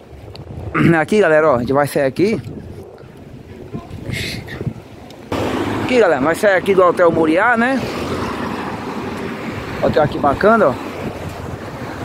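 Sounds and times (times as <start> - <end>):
street ambience: 0.0 - 12.0
wind rumbling on microphone: 0.0 - 12.0.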